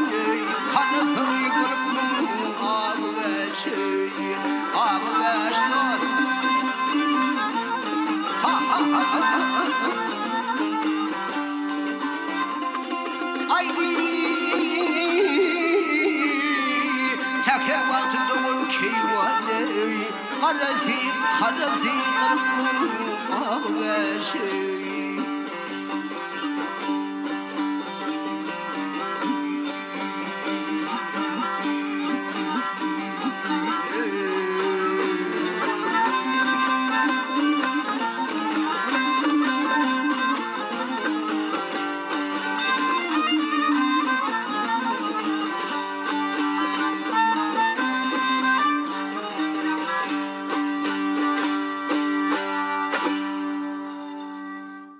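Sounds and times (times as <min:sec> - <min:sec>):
bowed spike fiddle melody: 0:00.0 - 0:54.9
strummed lute: 0:00.0 - 0:54.9.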